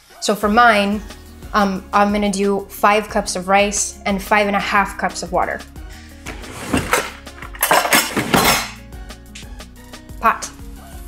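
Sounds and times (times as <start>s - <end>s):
pot scraping on tiles: 6.3s - 8.8s.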